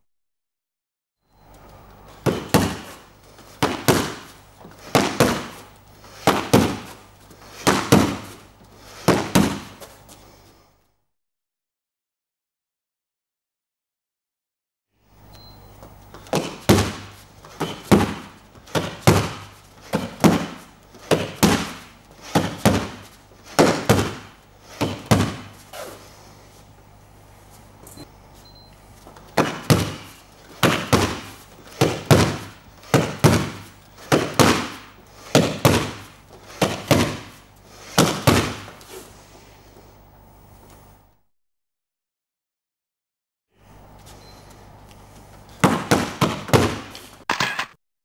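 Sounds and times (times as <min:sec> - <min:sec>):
boxing gloves hitting focus mitts: 0:02.2 - 0:08.4, 0:09.0 - 0:09.9, 0:16.1 - 0:25.9, 0:29.3 - 0:38.8, 0:45.6 - 0:47.1.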